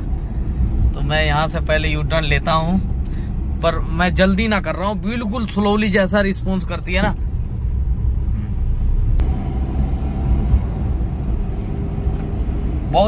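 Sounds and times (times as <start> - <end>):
car engine rumble: 0.0 - 13.0
tyre and road noise: 0.0 - 13.0.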